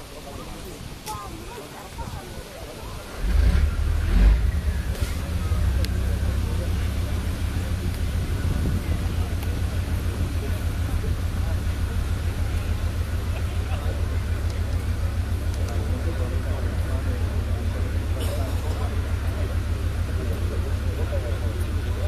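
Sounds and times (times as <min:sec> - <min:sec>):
crowd chatter: 0:00.0 - 0:22.0
distant tank engine rumble: 0:00.0 - 0:22.0.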